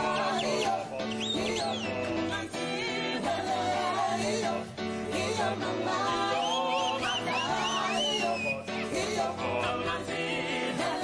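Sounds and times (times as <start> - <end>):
choir singing with band: 0.0 - 11.0.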